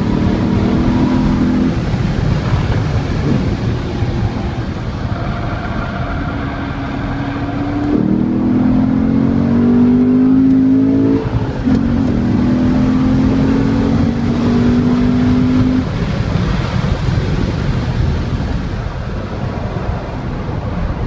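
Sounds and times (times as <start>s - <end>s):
car engine accelerating hard: 0.0s - 18.8s.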